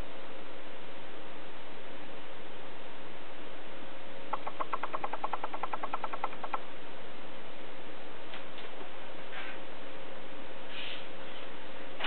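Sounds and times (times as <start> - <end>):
faint hum: 0.0 - 12.0
rapid ticking clicks: 4.4 - 6.6.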